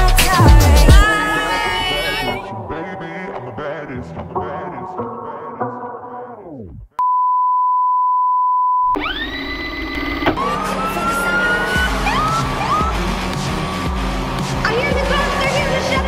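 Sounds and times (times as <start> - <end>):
club music with heavy beat: 0.0 - 2.4, 10.4 - 16.0
rising tone sweep: 8.9 - 14.9.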